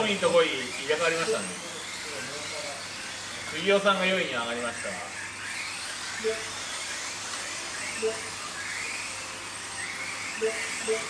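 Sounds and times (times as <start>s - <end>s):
electric toy car motors whining: 0.0s - 11.0s
short beeps: 10.4s - 11.0s.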